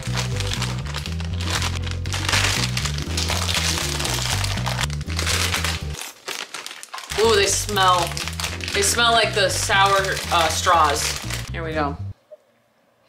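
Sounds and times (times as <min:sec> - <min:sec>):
background music with bass line: 0:00.0 - 0:06.0
plastic candy bag crinkling: 0:00.0 - 0:11.6.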